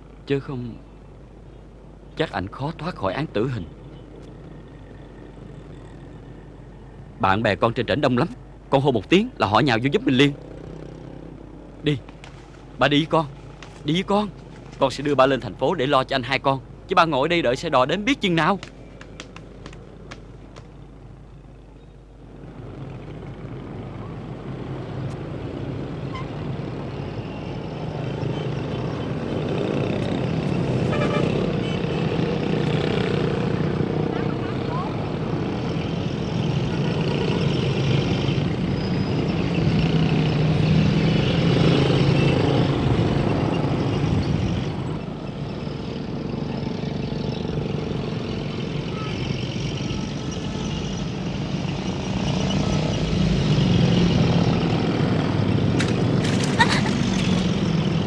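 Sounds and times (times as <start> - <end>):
motorbike engines passing: 2.1 - 58.0.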